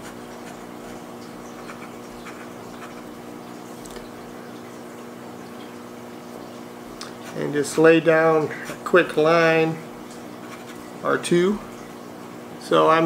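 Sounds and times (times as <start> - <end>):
steady low hum: 0.0 - 13.0
pen nib scratching paper: 1.6 - 3.1, 10.4 - 10.8.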